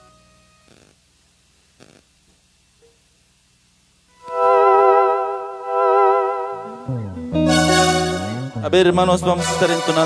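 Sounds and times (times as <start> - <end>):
synth keyboard chord with vibrato: 4.2 - 10.0.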